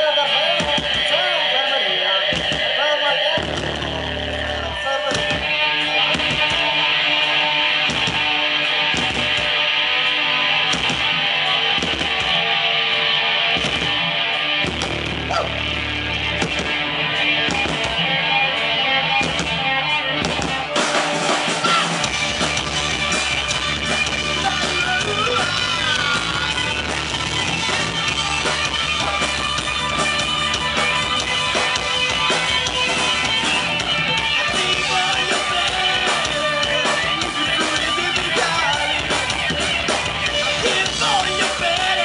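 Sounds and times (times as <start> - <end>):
live rock band playing: 0.0 - 42.0
steady drum beat: 2.3 - 2.8, 20.2 - 42.0.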